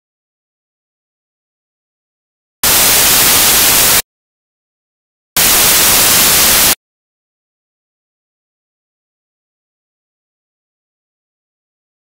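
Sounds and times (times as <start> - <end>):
loud static hiss: 2.6 - 4.0, 5.4 - 6.8.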